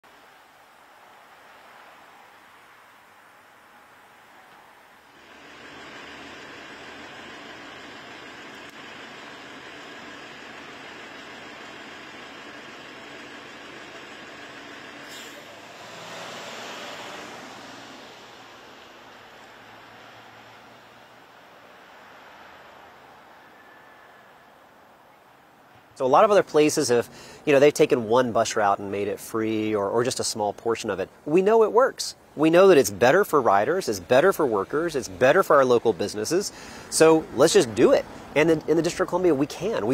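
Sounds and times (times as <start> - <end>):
street traffic: 0.0 - 39.9
bus engine running: 5.1 - 23.1
pneumatic air hiss from bus: 15.0 - 16.3.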